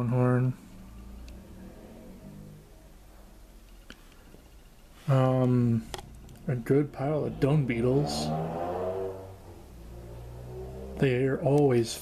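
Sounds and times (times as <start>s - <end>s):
low steady hum: 0.0s - 12.0s
man speaking: 5.1s - 8.4s, 11.0s - 12.0s.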